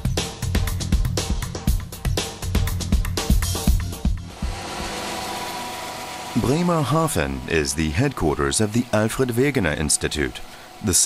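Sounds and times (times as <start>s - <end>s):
music with beat: 0.0s - 5.0s
steady mechanical hum: 4.3s - 11.0s.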